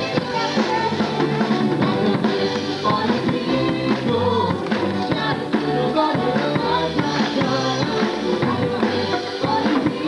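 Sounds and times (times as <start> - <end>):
bass drum and snare beat: 0.0 - 10.0
live band music: 0.0 - 10.0.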